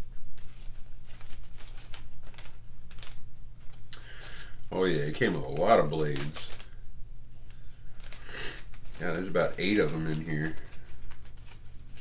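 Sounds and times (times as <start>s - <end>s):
plastic bag crinkling: 0.2s - 6.8s, 7.4s - 12.0s.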